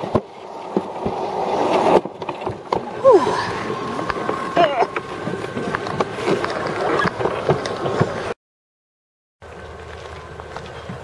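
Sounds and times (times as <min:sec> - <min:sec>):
sled rumbling on a track: 0:00.0 - 0:08.4.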